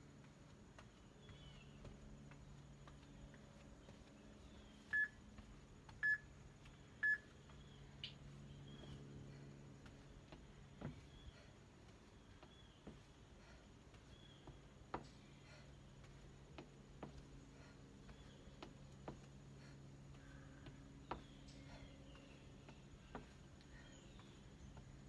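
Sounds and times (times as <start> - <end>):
interval timer beeps: 4.9 - 5.2, 6.0 - 6.2, 7.0 - 7.3.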